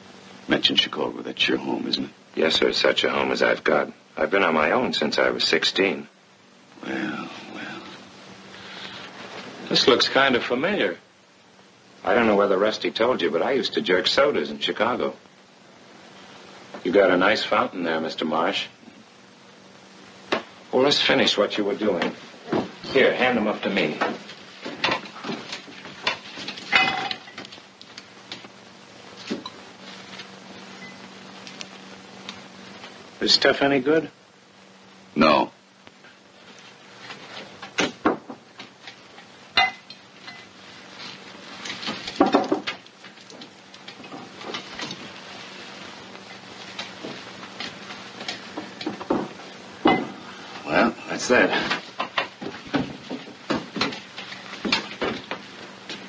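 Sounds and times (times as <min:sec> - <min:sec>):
faint steady hum: 0:00.0 - 0:56.0
film soundtrack hiss: 0:00.0 - 0:56.0
glass bottles clinking: 0:26.7 - 0:27.4.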